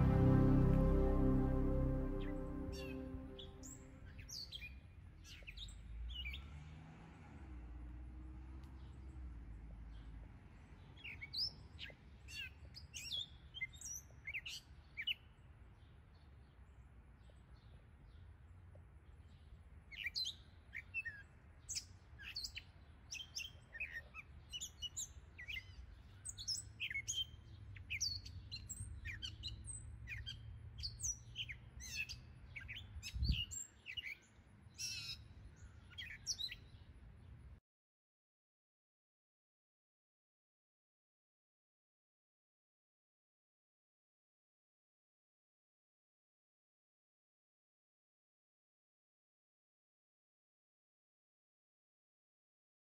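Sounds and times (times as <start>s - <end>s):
low rumble: 0.0s - 4.0s
soft music: 0.0s - 4.2s
songbirds chirping: 8.7s - 37.5s.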